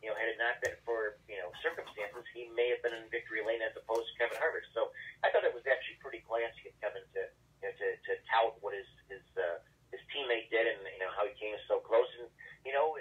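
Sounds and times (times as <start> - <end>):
man talking over telephone line: 0.0 - 13.0.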